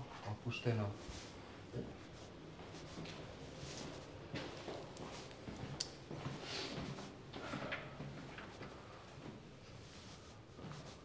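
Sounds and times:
footsteps on hard floor: 2.6 - 8.3.

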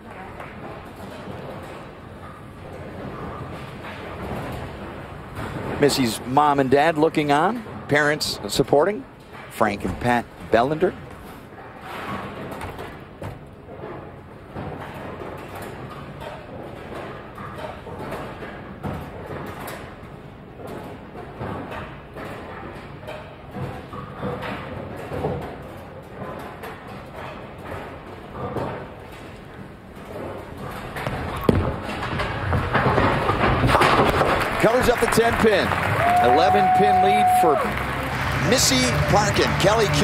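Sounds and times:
bowling pins thud: 2.6 - 6.9, 30.2 - 37.0
crowd cheering: 34.4 - 40.0
murmur of spectators: 34.4 - 40.0.

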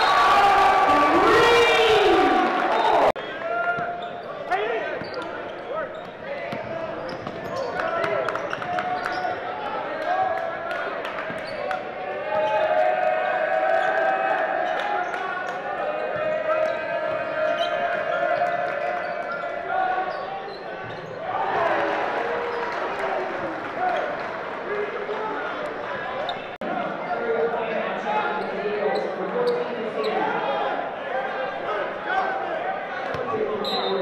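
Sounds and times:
crowd chatter and shouts: 0.0 - 34.0.

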